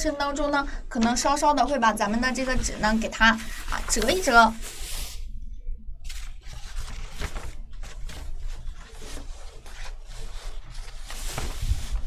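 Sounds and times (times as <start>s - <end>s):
paper rustling and creasing: 2.3s - 5.2s, 6.1s - 12.0s.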